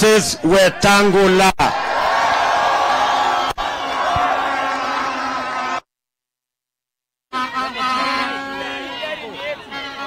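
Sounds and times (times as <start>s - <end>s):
rally crowd cheering: 0.0s - 5.9s, 7.4s - 10.0s.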